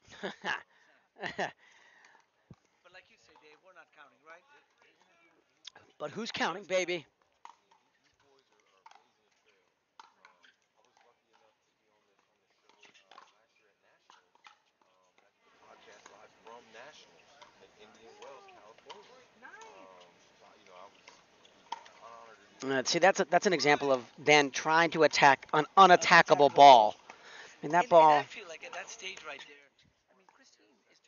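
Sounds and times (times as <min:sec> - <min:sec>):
faint distant voices: 0:08.2 - 0:22.6.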